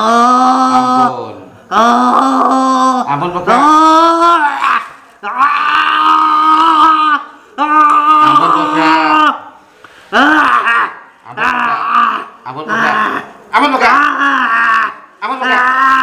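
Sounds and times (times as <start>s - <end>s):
man wailing: 0.0s - 9.5s, 10.1s - 16.0s.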